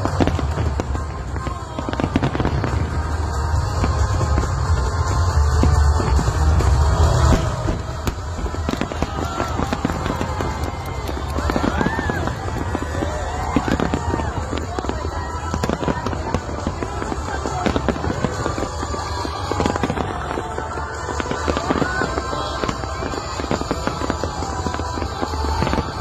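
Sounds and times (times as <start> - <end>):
fireworks bursting and crackling: 0.0 - 26.0.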